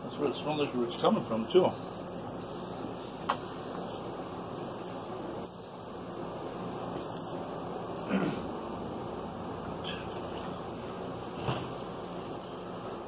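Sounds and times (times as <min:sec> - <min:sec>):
air conditioner humming: 0:00.0 - 0:13.0.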